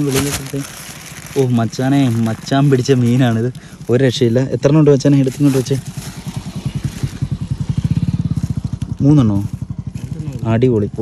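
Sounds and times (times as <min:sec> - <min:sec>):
small engine running: 0:00.0 - 0:11.0.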